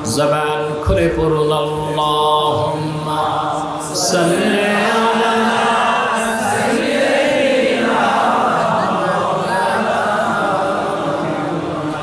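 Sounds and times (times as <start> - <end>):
man chanting: 0.0 - 6.3
crowd chanting in unison: 1.7 - 12.0.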